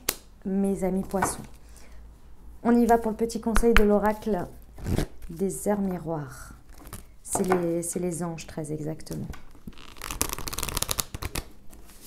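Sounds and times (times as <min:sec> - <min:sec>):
cards being shuffled by hand: 0:09.1 - 0:12.0.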